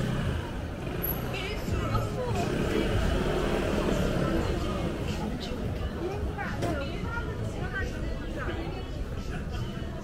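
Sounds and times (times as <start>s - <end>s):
chatter of passers-by: 0.0s - 10.0s.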